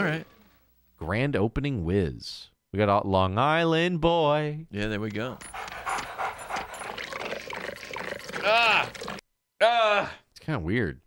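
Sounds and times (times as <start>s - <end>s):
dog licking a glass bowl: 5.4s - 9.2s.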